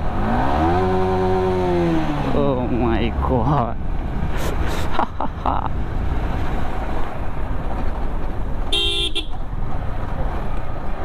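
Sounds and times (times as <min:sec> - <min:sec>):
motorcycle engine rumble: 0:00.0 - 0:11.0
road wind: 0:00.0 - 0:11.0.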